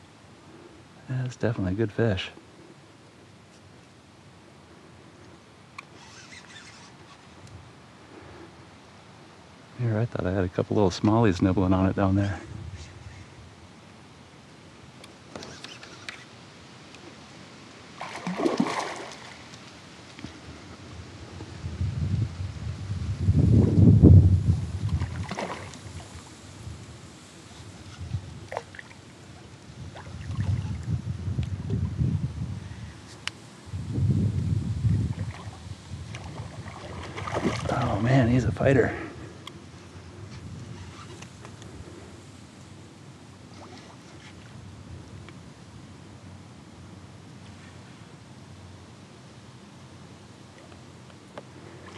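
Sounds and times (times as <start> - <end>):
water sloshing and splashing: 18.0 - 20.4, 24.8 - 26.3, 27.9 - 30.9, 35.0 - 38.2.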